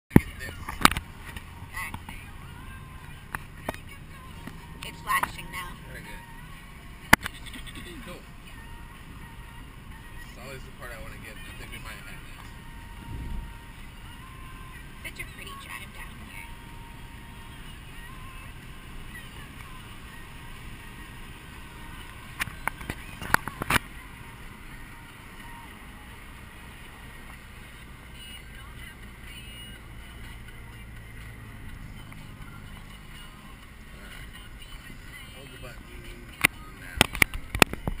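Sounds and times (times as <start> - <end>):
car cabin road and engine noise: 0.1 - 38.0.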